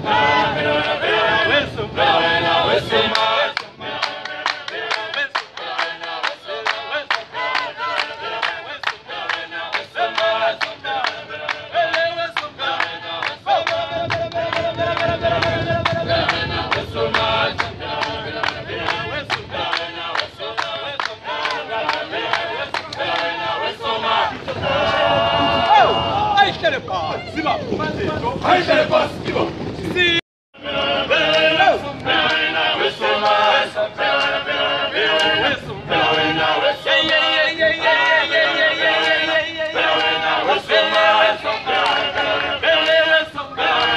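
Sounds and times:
group of voices singing: 0:00.0 - 0:26.4, 0:28.2 - 0:43.9
rhythmic hand claps: 0:02.2 - 0:25.8, 0:31.1 - 0:43.9.

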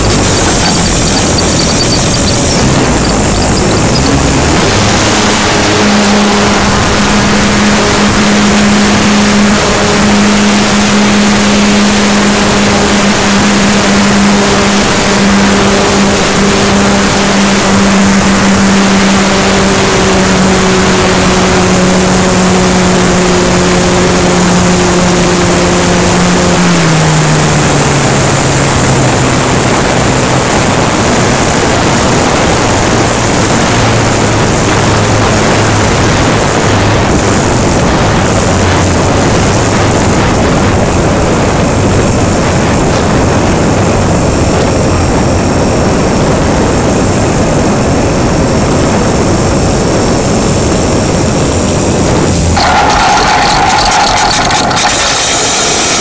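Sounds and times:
model airplane motor and propeller: 0:00.0 - 0:56.0
wind rush: 0:00.0 - 0:56.0.

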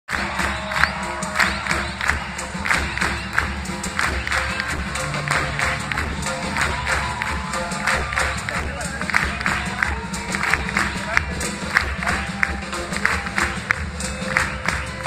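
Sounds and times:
crowd noise: 0:00.1 - 0:15.0
large band playing live: 0:00.1 - 0:15.0.

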